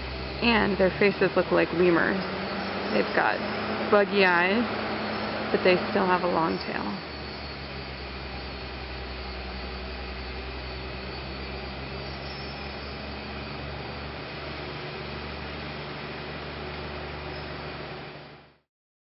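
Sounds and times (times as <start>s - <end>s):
construction machinery droning: 0.0s - 18.6s.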